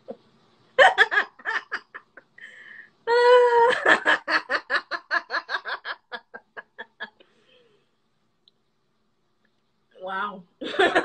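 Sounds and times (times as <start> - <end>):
woman laughing: 0.8 - 2.3, 3.4 - 7.2.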